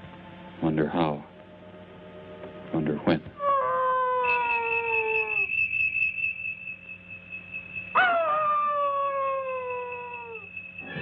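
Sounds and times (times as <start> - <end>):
falling howl-like wails: 3.4 - 5.6, 8.0 - 11.0
steady high whistle: 3.8 - 11.0.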